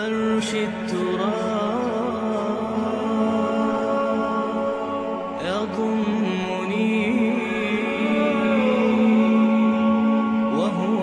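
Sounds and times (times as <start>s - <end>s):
wordless voice singing: 0.0s - 11.0s.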